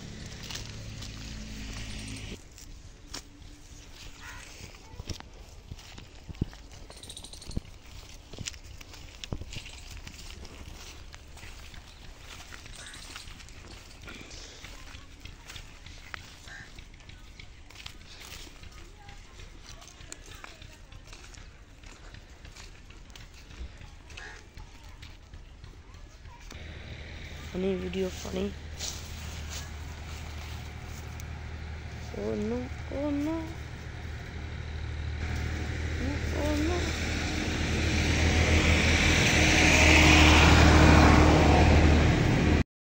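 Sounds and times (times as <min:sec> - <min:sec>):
motor engine droning: 0:00.0 - 0:02.4, 0:26.4 - 0:42.6
footsteps on dirt path: 0:00.0 - 0:42.6.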